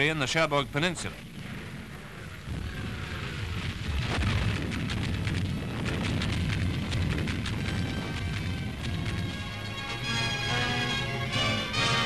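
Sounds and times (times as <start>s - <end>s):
explosions and artillery fire: 1.1s - 10.4s.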